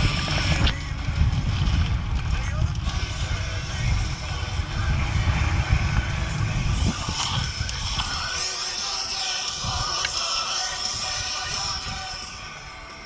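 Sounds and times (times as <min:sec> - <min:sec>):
bike tyre rumble on dirt: 0:00.0 - 0:12.3
wind buffeting: 0:00.0 - 0:12.8.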